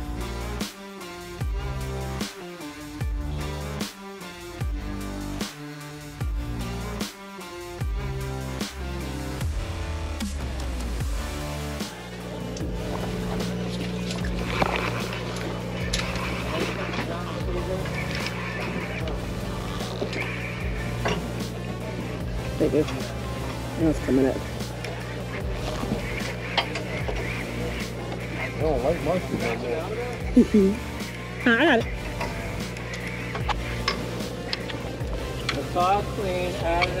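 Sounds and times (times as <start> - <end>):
background music: 0.0 - 37.0
boat machinery humming: 7.8 - 37.0
faint indistinct voices: 11.7 - 37.0.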